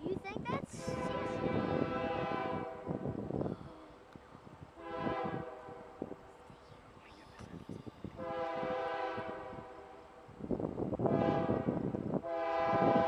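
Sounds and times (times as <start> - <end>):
distant locomotive air horn: 0.8 - 3.2, 4.8 - 6.1, 8.2 - 10.1, 11.0 - 13.0.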